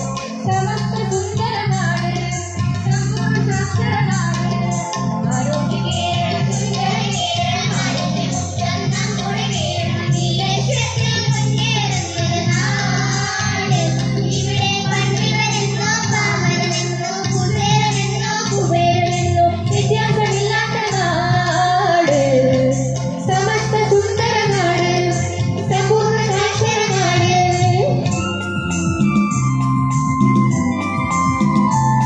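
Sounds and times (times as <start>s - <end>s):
girls singing through loudspeaker: 0.0s - 28.2s.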